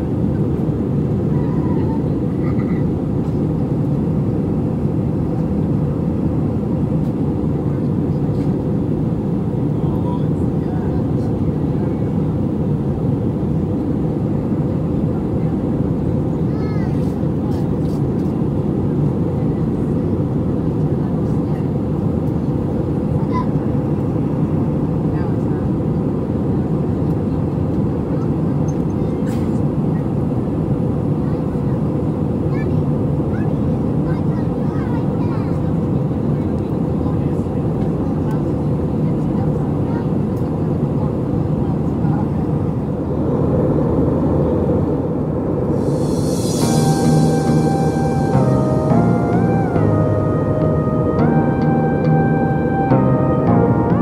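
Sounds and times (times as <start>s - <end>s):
airplane cabin engine roar: 0.0s - 54.0s.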